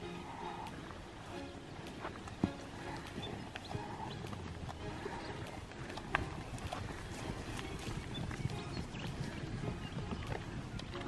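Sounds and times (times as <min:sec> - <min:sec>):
cattle hoof steps: 0:00.0 - 0:11.0
rustling in dry grass: 0:00.2 - 0:11.0.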